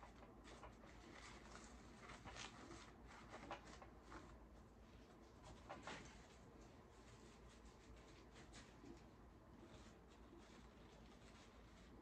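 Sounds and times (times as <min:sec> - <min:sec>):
artificial flowers rustling: 0:00.4 - 0:12.0.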